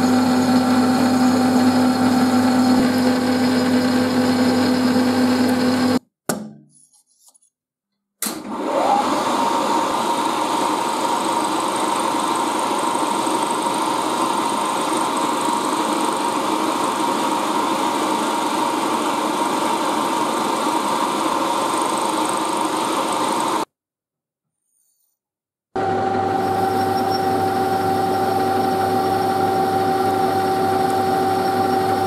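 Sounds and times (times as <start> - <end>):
milling machine whine: 0.0 - 6.0, 8.6 - 23.7, 25.8 - 32.0.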